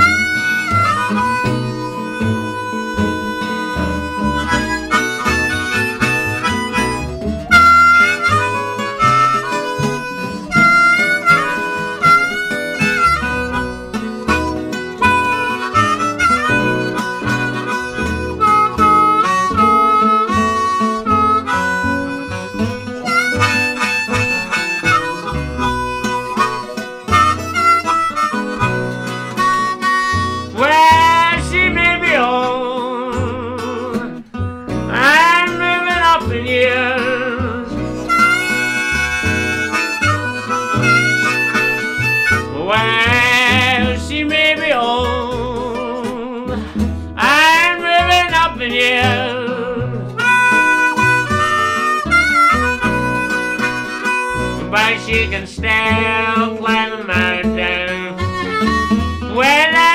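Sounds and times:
acoustic guitars: 0.0s - 59.9s
blues harmonica solo: 0.0s - 59.9s
upright bass: 0.0s - 59.9s.

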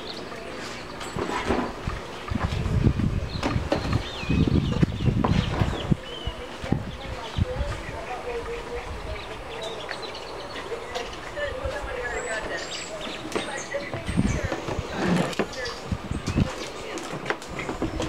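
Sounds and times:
faint background voices: 0.0s - 18.0s.

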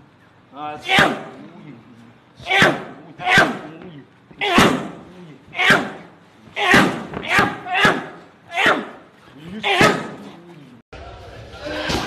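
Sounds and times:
fighters shouting: 0.7s - 1.5s, 2.4s - 10.8s.

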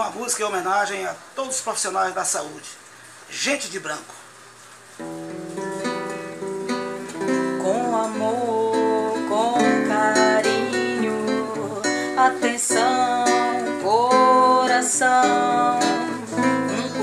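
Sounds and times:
guitar chords: 5.0s - 17.0s.

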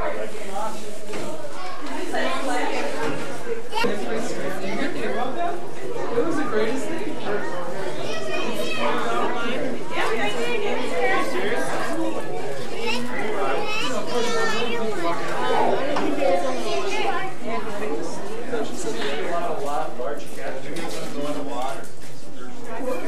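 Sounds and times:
crowd chatter: 0.0s - 23.0s.

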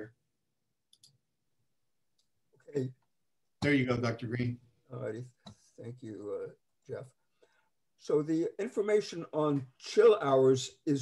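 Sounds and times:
computer mouse clicks: 0.9s - 1.2s.

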